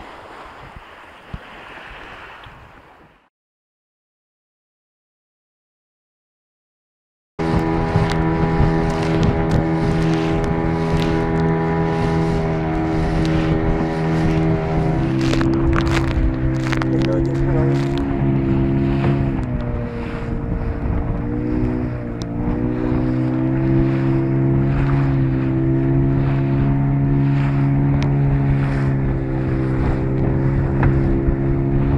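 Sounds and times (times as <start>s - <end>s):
water noise: 0.0s - 3.3s, 7.4s - 31.9s
wind: 0.0s - 3.3s, 7.4s - 31.9s
motorboat engine running: 7.4s - 31.9s.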